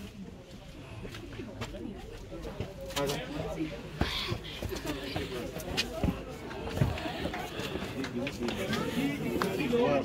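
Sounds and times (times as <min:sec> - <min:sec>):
indistinct voices: 0:00.7 - 0:10.0.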